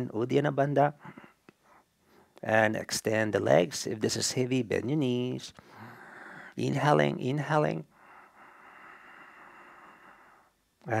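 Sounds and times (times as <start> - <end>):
slow faint inhalation: 5.6 - 6.6, 7.9 - 10.7.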